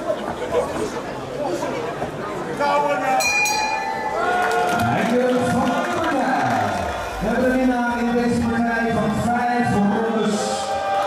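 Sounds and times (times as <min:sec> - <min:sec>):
crowd chatter: 0:00.0 - 0:11.0
bright metallic ring: 0:03.2 - 0:04.2
man's voice: 0:04.8 - 0:10.7.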